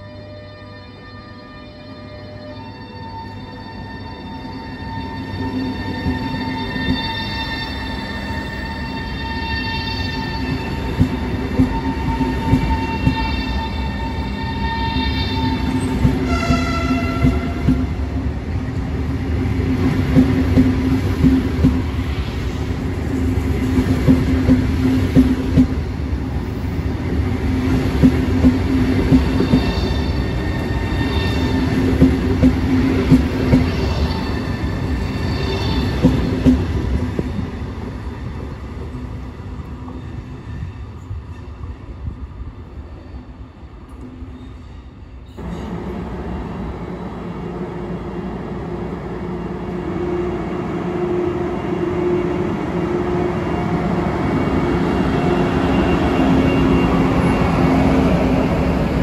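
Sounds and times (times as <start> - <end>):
electric train hum and whine: 0.0 - 59.0.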